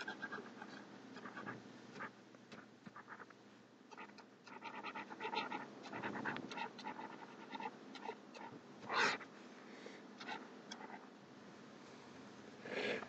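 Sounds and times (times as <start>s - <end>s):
stylus scratching on screen: 0.0s - 3.3s, 3.9s - 9.3s.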